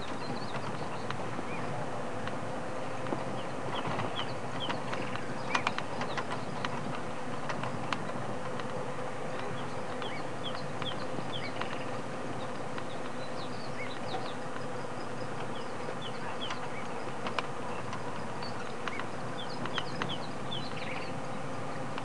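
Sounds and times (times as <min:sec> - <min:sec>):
insect hum: 0:00.0 - 0:22.0
faint clicks: 0:03.8 - 0:21.1.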